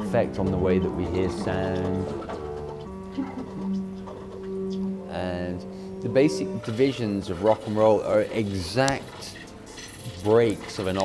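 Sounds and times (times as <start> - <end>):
short low warbling notes: 0.0 - 8.2
synthesizer drone: 0.0 - 10.2.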